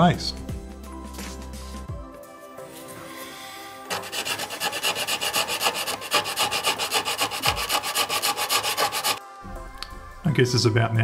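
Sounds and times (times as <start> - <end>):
sanding stick rubbing plastic: 3.9 - 9.2.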